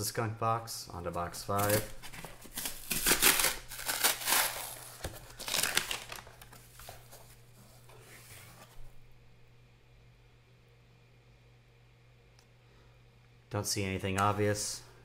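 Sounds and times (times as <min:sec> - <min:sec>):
cardboard rustling: 0:01.1 - 0:09.0
cardboard ripping and crinkling: 0:01.5 - 0:07.4.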